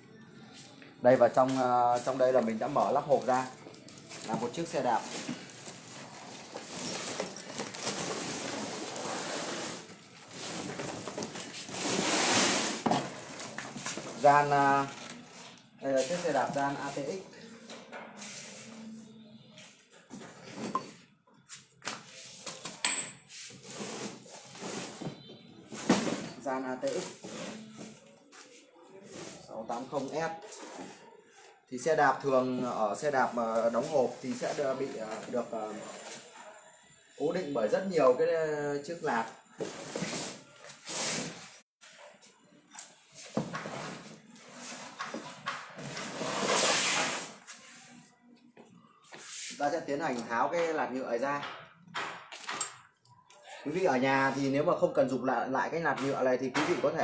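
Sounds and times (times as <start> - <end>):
packaging rustling and scraping: 0.6 - 17.6, 23.4 - 31.5, 32.3 - 37.8, 38.8 - 48.1.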